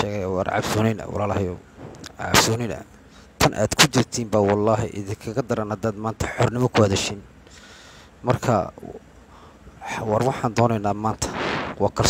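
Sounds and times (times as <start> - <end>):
man talking: 0.0 - 7.3, 8.2 - 9.0, 9.8 - 12.0
breathy hiss: 7.4 - 8.2, 9.2 - 9.8.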